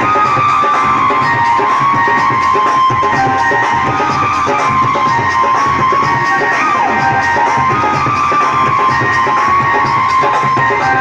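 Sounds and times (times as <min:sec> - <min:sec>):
held melodic line: 0:00.0 - 0:11.0
steady drum rhythm: 0:00.0 - 0:11.0.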